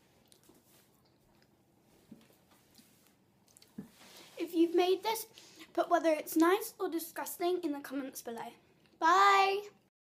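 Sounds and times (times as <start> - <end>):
soft mouth clicks chewing: 0.2 - 3.9.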